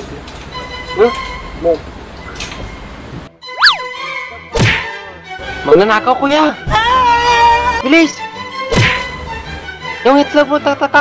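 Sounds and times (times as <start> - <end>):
background music: 0.0 - 11.0
slide-whistle boing: 3.5 - 4.0.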